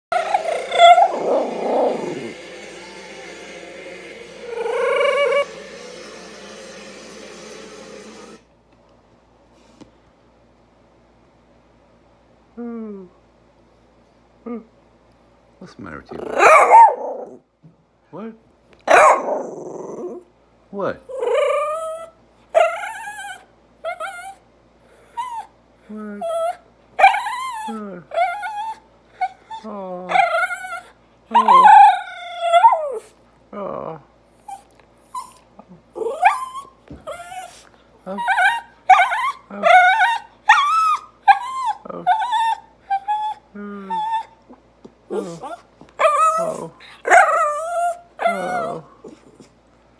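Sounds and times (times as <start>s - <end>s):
small dog howling: 0.1s - 2.4s, 4.4s - 5.9s, 18.9s - 20.3s, 21.1s - 24.4s, 26.2s - 33.1s, 34.4s - 44.3s, 45.1s - 49.2s.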